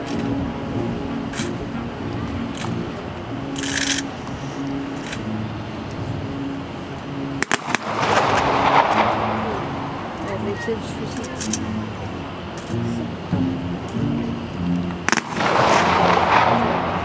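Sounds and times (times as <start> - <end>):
military band music: 0.0 - 17.0
rushing noise: 0.0 - 17.0.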